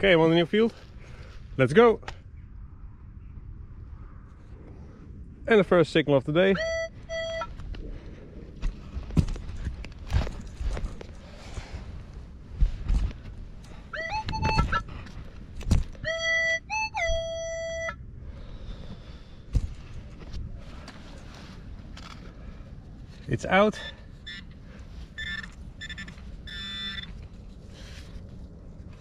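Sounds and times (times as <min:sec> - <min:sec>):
metal detector tone signals: 0:06.6 - 0:07.5, 0:13.9 - 0:14.9, 0:16.0 - 0:18.0, 0:25.2 - 0:27.1.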